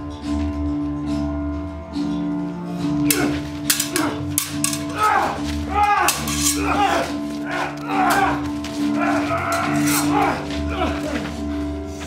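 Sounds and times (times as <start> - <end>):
sabres clashing: 3.0 - 10.9
fighters grunting and shouting: 3.0 - 11.4.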